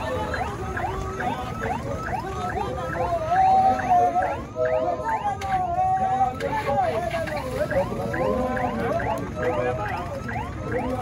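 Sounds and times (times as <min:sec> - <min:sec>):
siren yelping: 0:00.0 - 0:11.0
steady siren tone: 0:00.0 - 0:11.0.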